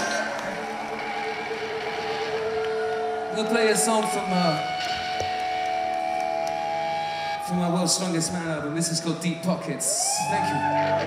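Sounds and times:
crowd background noise: 0:00.0 - 0:11.0
steady tone through sound system: 0:00.0 - 0:11.0.

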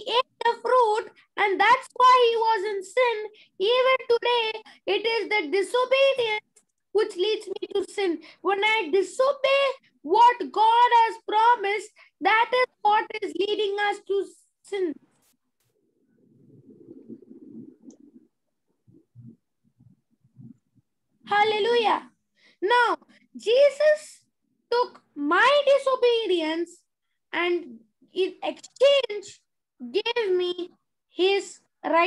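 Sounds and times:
boy speaking in a high voice: 0:00.0 - 0:15.0, 0:21.3 - 0:32.0
low muffled rumbling: 0:16.2 - 0:20.6.

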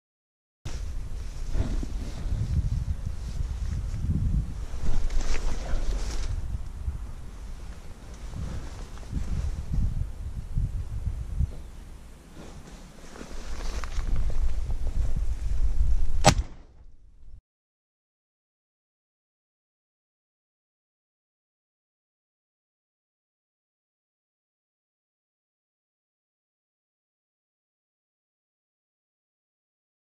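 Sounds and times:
wind buffeting microphone: 0:00.7 - 0:12.6, 0:13.3 - 0:16.5
microphone handling noise: 0:00.7 - 0:17.4
sharp crack: 0:16.2 - 0:17.0.

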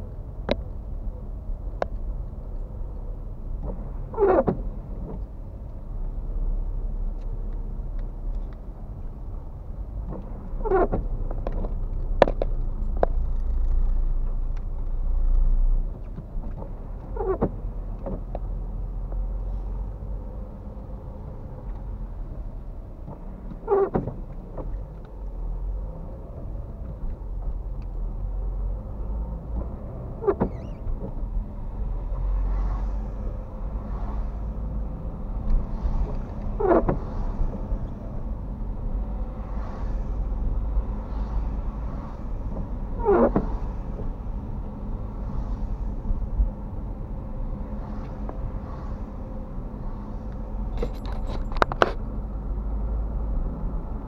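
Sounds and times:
car engine and road rumble: 0:00.0 - 0:54.0
windscreen wiper sweeping wet glass: 0:25.9 - 0:38.2, 0:39.0 - 0:46.5.

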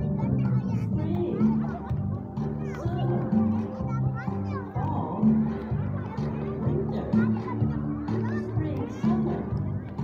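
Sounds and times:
children's song playing: 0:00.0 - 0:10.0.

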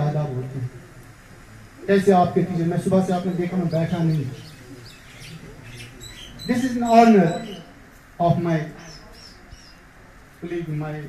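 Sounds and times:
small birds chirping: 0:02.4 - 0:10.4
man's voice: 0:06.4 - 0:08.8.

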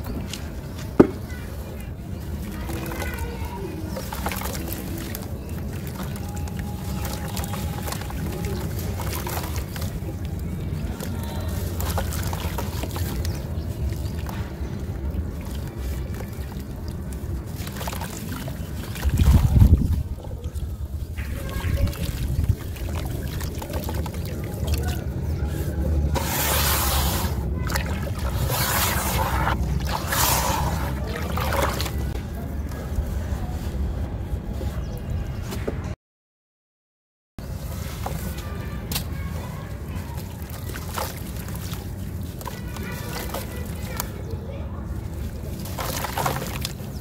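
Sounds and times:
hands splashing through water: 0:02.3 - 0:32.4, 0:39.8 - 0:44.3, 0:44.9 - 0:47.0
sand and clay crumbling into water: 0:21.2 - 0:32.2, 0:37.5 - 0:47.0.

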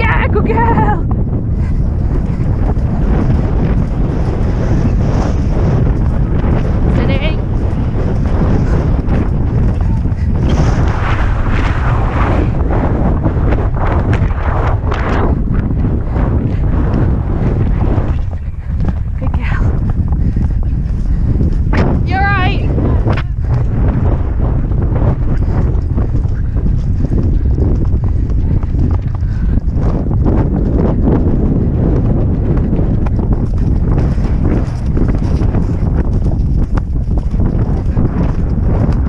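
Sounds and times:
wind buffeting microphone: 0:00.0 - 0:39.0
horse hoofbeat thuds: 0:16.6 - 0:22.2, 0:25.1 - 0:39.0.

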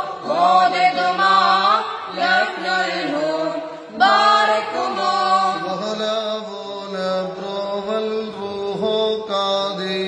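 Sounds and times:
boys and man singing hymn: 0:00.0 - 0:10.0.

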